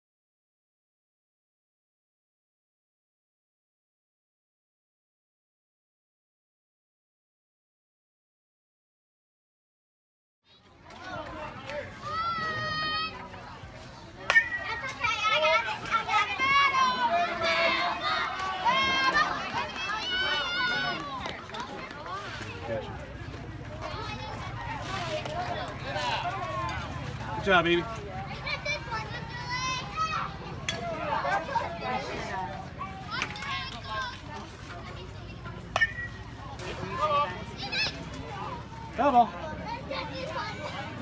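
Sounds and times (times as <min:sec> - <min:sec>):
children shouting and cheering: 0:10.5 - 0:13.3, 0:14.6 - 0:22.2, 0:28.2 - 0:34.2, 0:37.3 - 0:41.0
children calling out: 0:12.0 - 0:13.2, 0:14.5 - 0:21.0.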